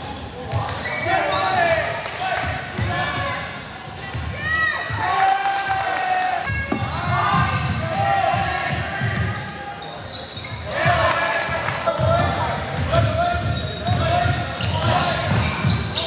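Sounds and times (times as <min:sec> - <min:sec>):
basketball bouncing on court: 0:06.5 - 0:09.4.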